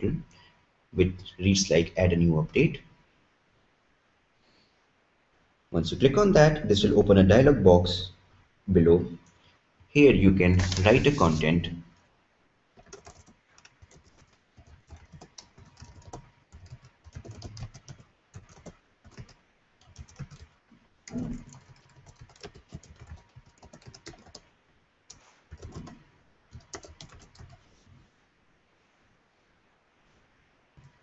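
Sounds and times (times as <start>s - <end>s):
computer keyboard typing: 12.8s - 24.5s, 25.1s - 27.6s.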